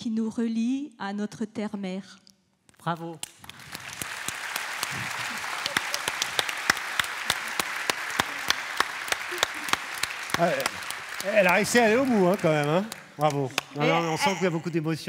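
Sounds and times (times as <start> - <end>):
audience applauding: 3.2 - 15.0
man's voice: 10.3 - 15.0.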